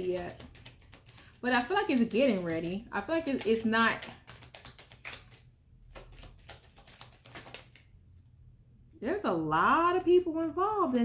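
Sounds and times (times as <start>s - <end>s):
cards being shuffled: 0.0s - 7.9s.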